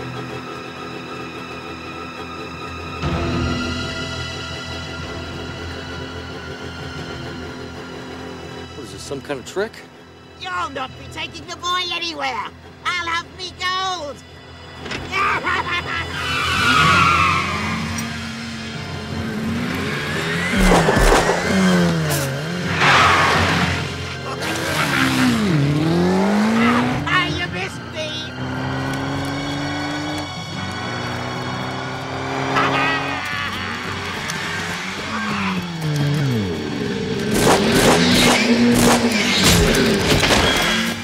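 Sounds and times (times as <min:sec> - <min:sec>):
film music: 0:00.0 - 0:41.0
tyre squeals and skids: 0:14.9 - 0:18.6, 0:20.0 - 0:25.8, 0:30.9 - 0:36.9, 0:37.6 - 0:41.0
go-kart engine revving: 0:15.6 - 0:41.0.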